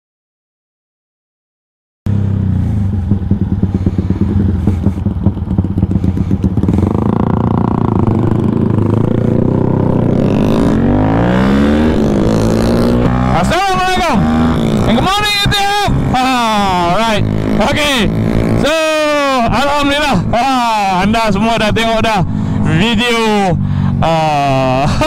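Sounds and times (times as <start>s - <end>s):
motorcycle engine revving: 2.1s - 25.0s.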